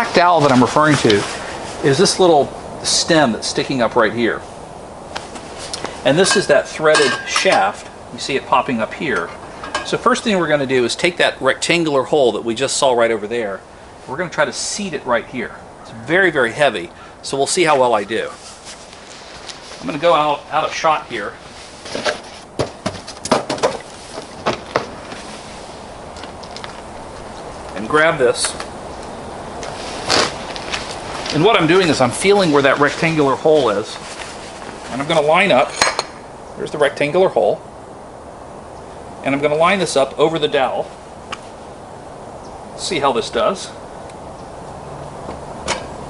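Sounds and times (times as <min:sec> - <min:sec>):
outdoor background noise: 0:00.0 - 0:46.0
steady low hum: 0:00.0 - 0:46.0.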